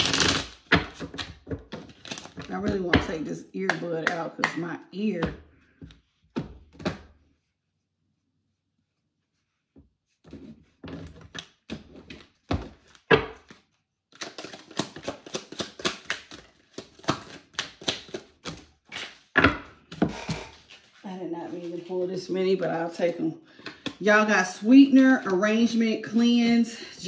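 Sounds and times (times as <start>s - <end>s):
cards shuffling clatter: 0.0s - 2.5s, 11.4s - 19.3s.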